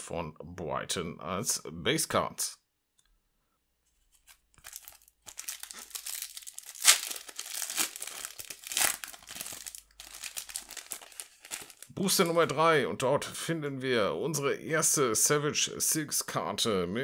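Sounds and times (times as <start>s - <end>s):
foil wrapper crinkling: 4.1s - 11.9s
foil wrapper ripping: 4.2s - 11.9s.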